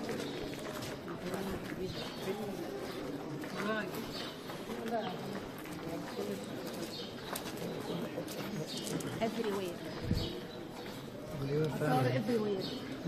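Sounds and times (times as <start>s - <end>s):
overlapping chatter: 0.0s - 13.0s.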